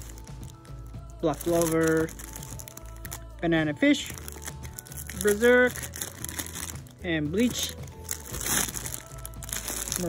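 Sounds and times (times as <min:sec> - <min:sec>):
faint background music: 0:00.0 - 0:10.0
plastic bags crinkling: 0:00.0 - 0:10.0.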